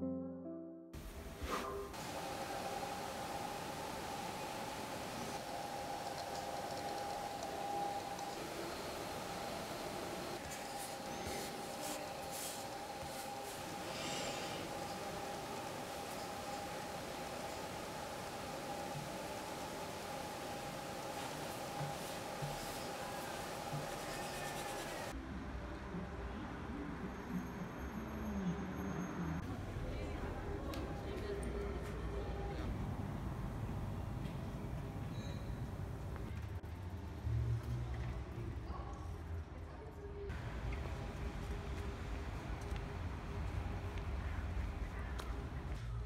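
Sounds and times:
steady hiss: 1.0s - 25.1s
street traffic rumble: 20.9s - 38.7s, 40.3s - 46.0s.

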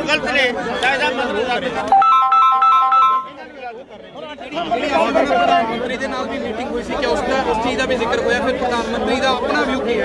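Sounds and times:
mobile phone ringtone: 1.9s - 3.5s.

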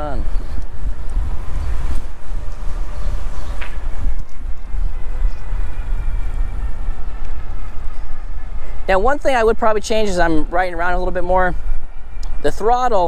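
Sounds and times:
tyre noise on pavement: 0.0s - 8.1s
electric motor whine: 0.0s - 9.8s
wind buffeting microphone: 0.0s - 13.0s.

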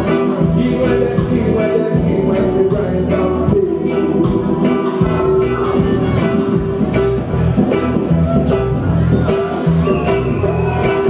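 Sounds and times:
drum beat: 0.0s - 11.0s
live reggae band playing: 0.0s - 11.0s.

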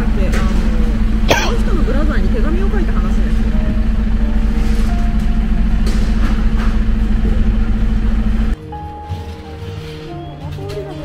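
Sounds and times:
truck engine idling: 0.0s - 8.6s.

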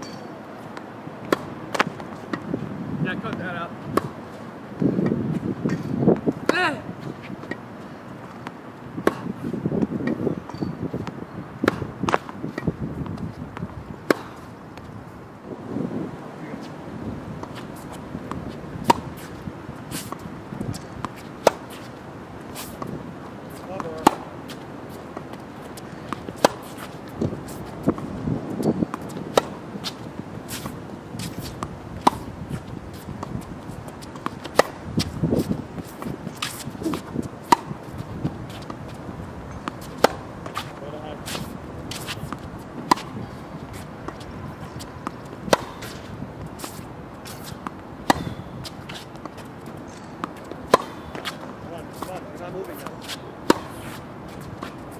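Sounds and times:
tennis ball hit: 1.3s - 2.4s, 9.0s - 9.4s, 14.0s - 14.5s, 17.4s - 22.0s, 22.6s - 28.1s, 28.9s - 33.4s, 34.0s - 38.8s, 39.5s - 54.8s
faint shoe scuffs: 17.5s - 21.9s, 45.6s - 54.9s.

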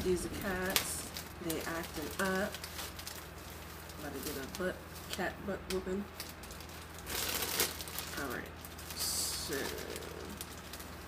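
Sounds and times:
packaging crinkling: 0.0s - 11.0s.

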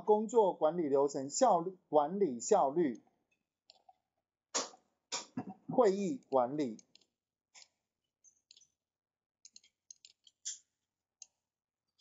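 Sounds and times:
mouse and keyboard clicks: 9.5s - 10.7s.

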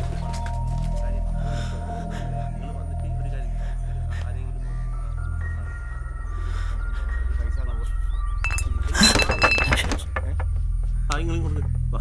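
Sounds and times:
steady low drone: 0.0s - 12.0s
glassy clinking and ringing: 8.4s - 10.0s.

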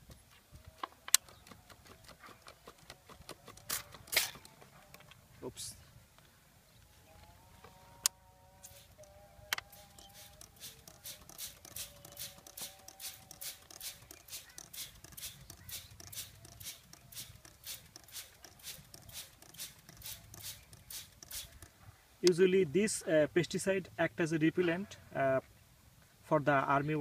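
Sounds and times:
sharp clicks: 0.8s - 5.2s, 8.9s - 22.4s
trigger sprayer hissing mist: 8.6s - 21.7s.

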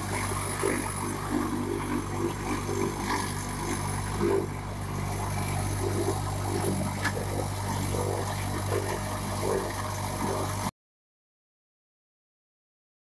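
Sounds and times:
concrete extruder humming and throbbing: 0.0s - 10.7s.

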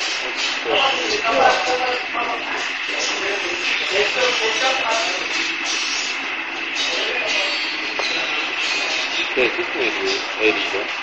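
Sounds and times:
hissy street din: 0.0s - 11.0s.

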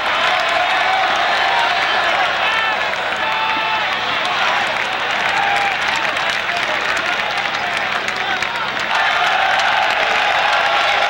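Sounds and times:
crowd clapping: 0.0s - 11.0s
crowd shouting and cheering: 0.0s - 11.0s.

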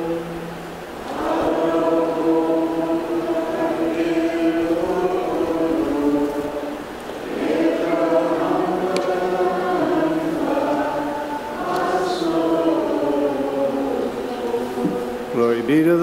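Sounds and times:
choir singing a slow chant: 0.0s - 16.0s.

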